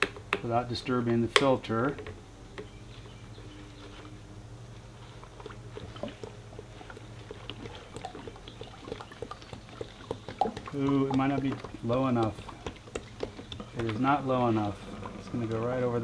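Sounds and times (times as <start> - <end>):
oil pouring and trickling: 4.9 - 16.0.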